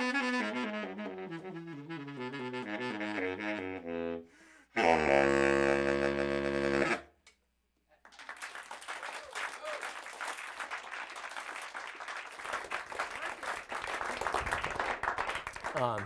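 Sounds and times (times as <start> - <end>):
saxophone low note: 0.0 - 7.0
audience applauding: 8.0 - 16.0.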